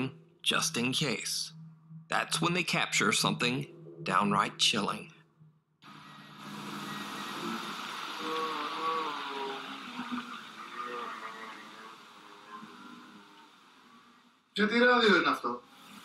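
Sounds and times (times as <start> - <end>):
warbling garbled tones: 0.0 - 5.1, 6.4 - 13.3
radio static hiss: 5.9 - 16.0.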